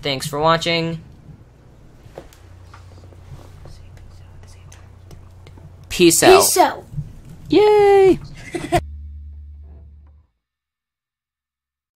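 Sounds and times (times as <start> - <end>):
steady low hum: 0.0 - 10.2
faint whispering: 2.6 - 5.7.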